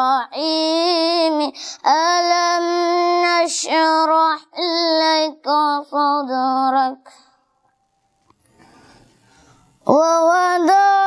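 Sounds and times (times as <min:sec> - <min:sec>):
boy chanting recitation: 0:00.0 - 0:07.4, 0:09.8 - 0:11.0.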